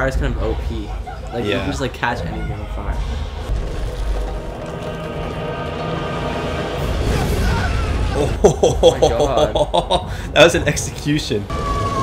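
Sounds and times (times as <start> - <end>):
dramatic orchestral score: 0.0 - 12.0.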